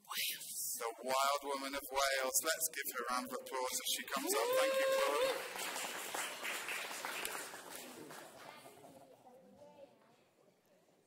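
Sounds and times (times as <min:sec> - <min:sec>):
congregation applauding: 0:04.1 - 0:08.8
man's drawn-out ooh: 0:04.2 - 0:05.5.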